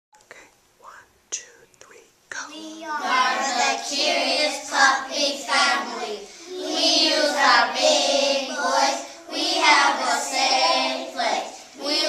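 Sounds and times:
person whispering: 0.2 - 2.7.

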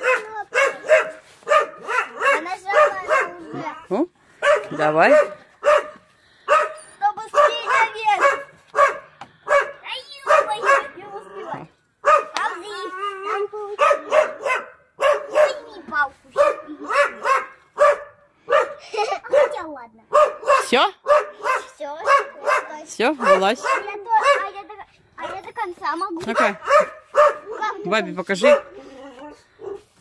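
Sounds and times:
dog barking high-pitched: 0.0 - 25.4, 26.2 - 29.9.

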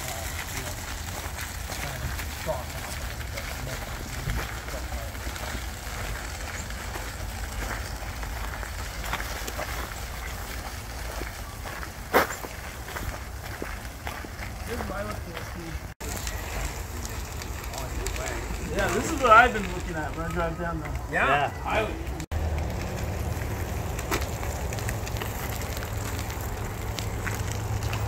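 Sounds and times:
faint voices: 0.0 - 8.9, 14.6 - 22.3
footsteps on gravel: 0.0 - 28.0
wheels crunching on gravel: 0.0 - 28.0
steady low rumble: 21.9 - 28.0.

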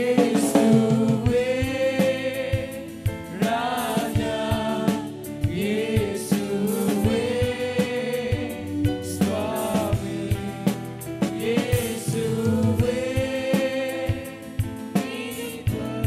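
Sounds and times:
band accompaniment: 0.0 - 16.0
man singing into a microphone: 0.0 - 16.0
steady drum beat: 0.0 - 16.0.

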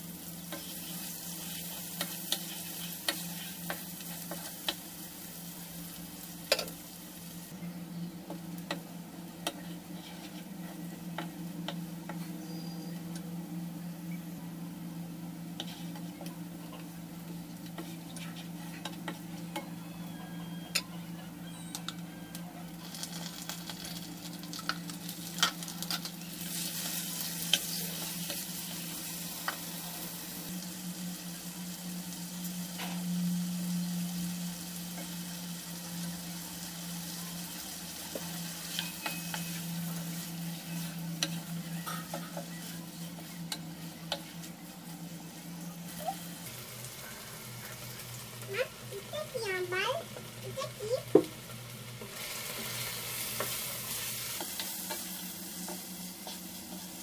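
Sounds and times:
oil sizzling in a wok: 0.0 - 14.0, 14.8 - 20.9, 21.8 - 57.0.

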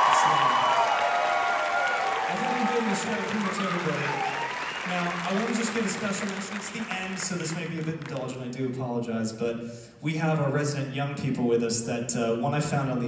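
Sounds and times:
audience applauding and cheering: 0.0 - 8.5.

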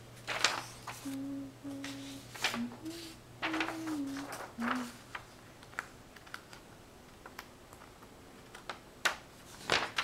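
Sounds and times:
person humming a slow tune: 0.9 - 5.2.

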